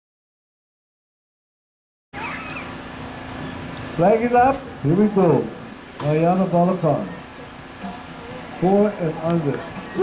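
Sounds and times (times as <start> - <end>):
short rising high-pitched call: 2.2 - 2.8
crowd noise: 2.2 - 10.0.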